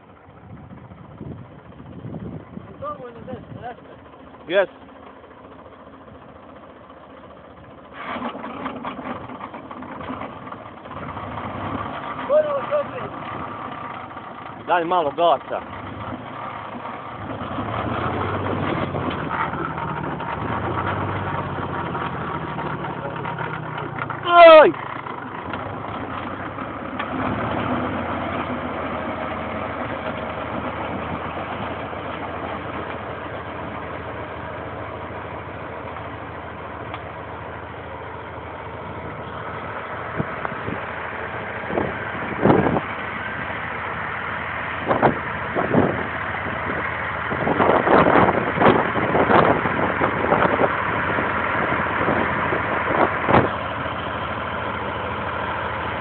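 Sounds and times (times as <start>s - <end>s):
tractor diesel engine under load: 0.0s - 56.0s
rotary tiller cutting sod: 7.9s - 10.3s
loud shouted call: 24.2s - 24.8s.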